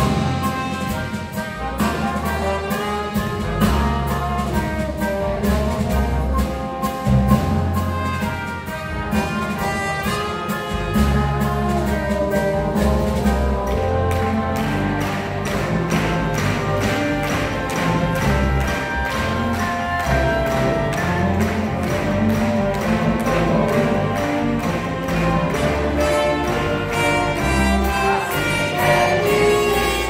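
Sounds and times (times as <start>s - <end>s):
orchestra playing rock song live: 0.0s - 30.0s.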